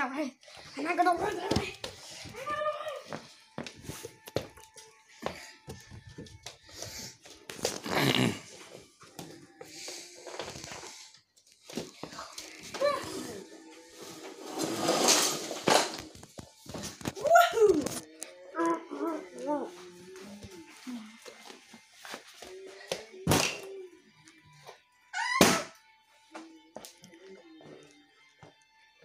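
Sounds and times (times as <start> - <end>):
child's wordless vocal noises: 0.0 - 3.2, 12.1 - 14.2, 17.2 - 21.3
music: 0.0 - 29.0
toys clattering on wooden floor: 14.6 - 16.4.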